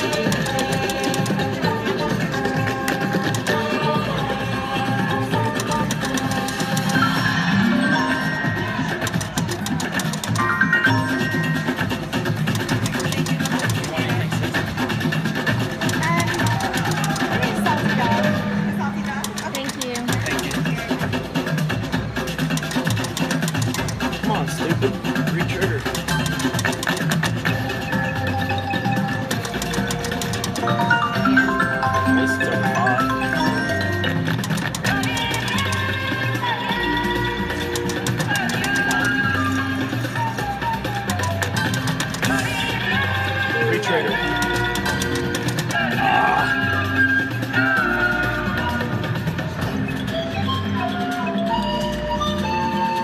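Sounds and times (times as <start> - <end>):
slot machine bonus music: 5.1 - 18.6, 22.3 - 52.8
reel ticks: 15.8 - 17.4, 29.3 - 30.6, 37.7 - 39.1, 41.0 - 42.5
bright stepping chime notes: 30.6 - 34.1.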